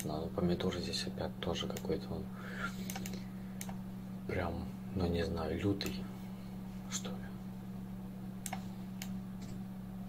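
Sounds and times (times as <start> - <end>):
low electrical hum: 0.0 - 10.0
computer keys clicking: 2.9 - 3.8, 8.4 - 9.2.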